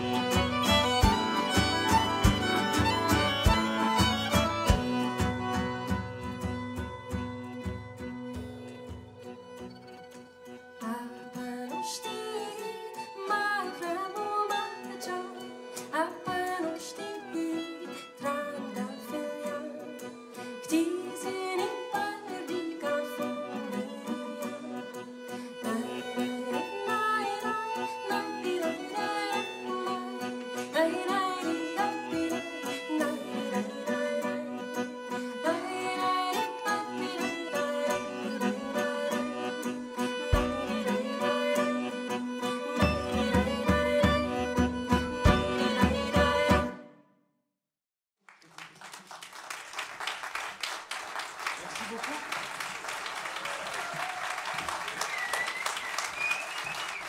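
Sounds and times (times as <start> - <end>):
strummed acoustic guitar: 0.0 - 11.8, 18.2 - 46.8
violin: 0.0 - 46.9
accordion: 0.0 - 47.0
woman singing: 10.8 - 46.8.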